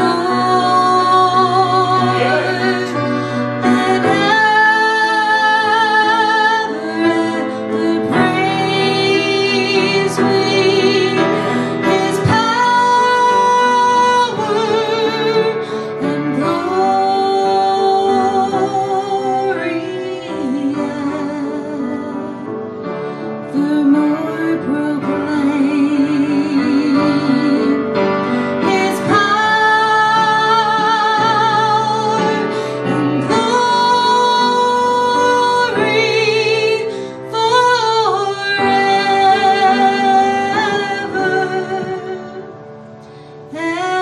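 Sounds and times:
woman singing: 0.0s - 22.7s, 23.3s - 42.6s, 43.5s - 44.0s
grand piano: 0.0s - 44.0s.

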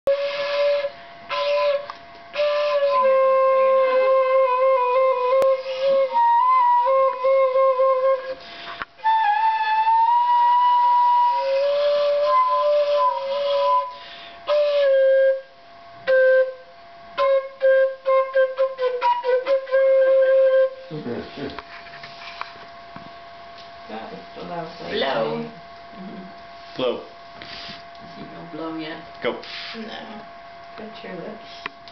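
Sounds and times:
wooden flute playing a slow tune: 0.1s - 8.4s, 9.0s - 20.9s.

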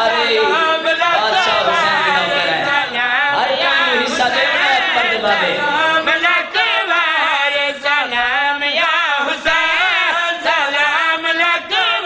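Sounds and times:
man chanting religious recitation: 0.0s - 12.0s.

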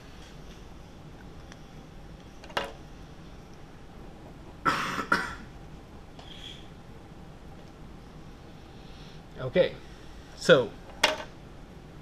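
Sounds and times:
person coughing: 4.6s - 5.5s.

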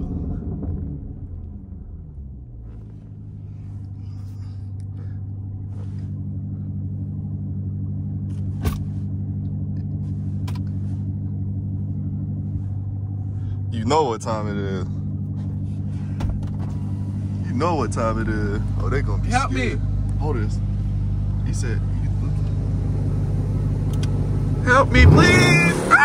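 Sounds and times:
engine heard from inside car: 0.0s - 26.0s.

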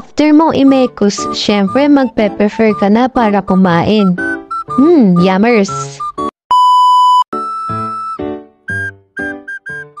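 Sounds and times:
background music short notes: 0.0s - 10.0s
loud electronic beep: 6.0s - 10.0s.

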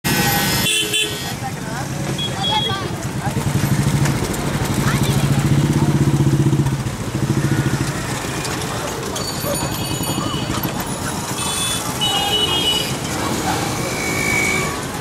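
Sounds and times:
street traffic: 0.0s - 15.0s
vehicle horn: 0.1s - 1.3s, 11.4s - 13.0s, 13.8s - 14.9s
people talking: 1.1s - 6.6s, 8.5s - 11.4s, 12.0s - 15.0s
motorcycle engine running: 1.5s - 15.0s.

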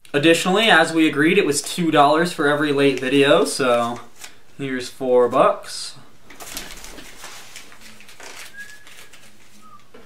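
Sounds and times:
paper bills rustling: 1.5s - 4.4s, 6.3s - 10.0s.

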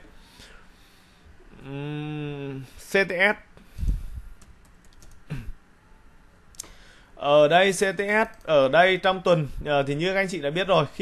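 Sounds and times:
keyboard keystrokes: 4.4s - 5.2s.

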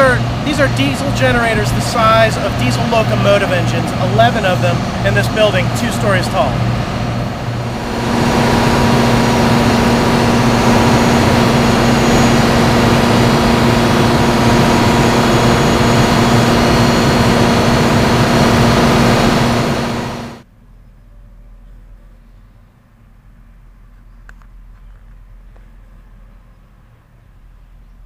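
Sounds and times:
diesel generator running: 0.0s - 20.5s.

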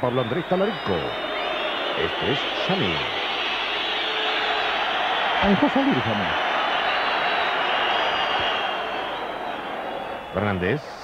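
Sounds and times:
tv commentator speaking: 0.0s - 1.2s, 2.0s - 3.2s, 5.4s - 6.4s
stadium crowd noise: 0.0s - 11.0s.

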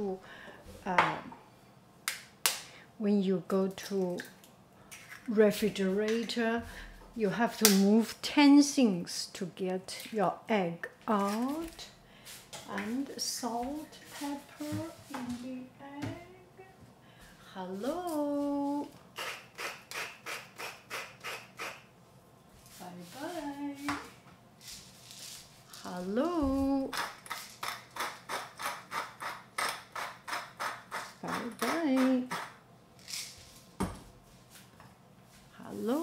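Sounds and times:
pepper grinder grinding: 26.9s - 33.4s.

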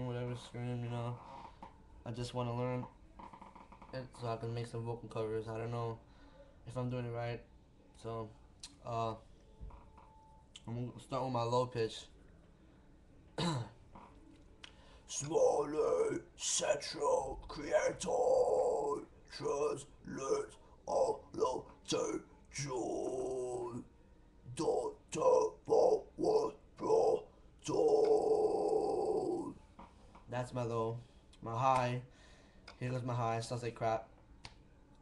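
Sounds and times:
man clearing his throat: 13.4s - 13.8s
man's guttural scream: 17.0s - 23.8s, 24.5s - 29.6s.

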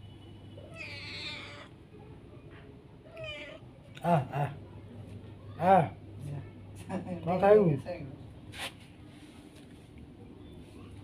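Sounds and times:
cat meowing: 0.6s - 1.7s, 3.1s - 3.6s.

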